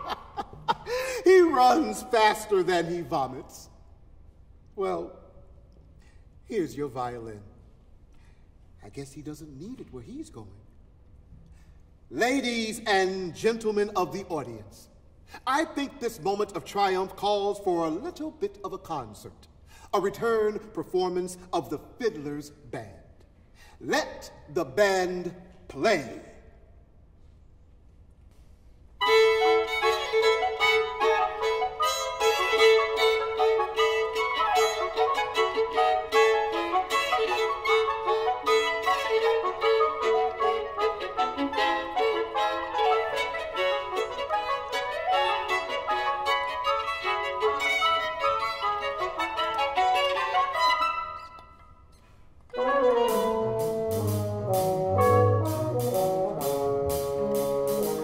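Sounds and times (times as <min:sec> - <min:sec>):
chamber ensemble playing: 0:29.0 - 0:51.4, 0:52.5 - 0:58.0.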